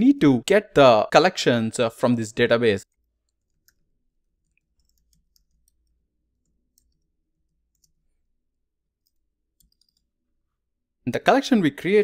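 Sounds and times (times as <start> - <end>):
keyboard typing clicks: 9.0 - 10.1.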